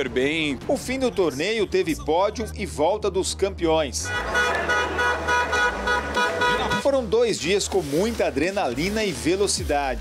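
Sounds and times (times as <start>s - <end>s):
vehicle horn blast: 4.0s - 7.0s.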